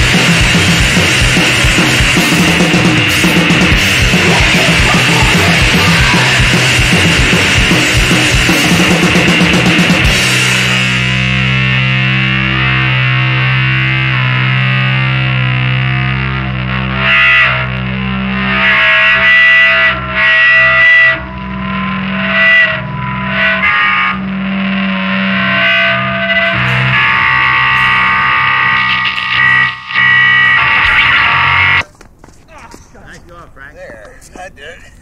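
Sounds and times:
drums playing loudly: 0.0 - 12.4
distorted bass guitar: 0.0 - 31.9.

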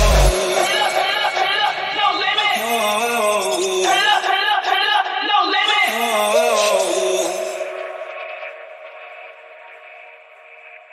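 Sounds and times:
sustained electronic chord: 0.0 - 2.0.

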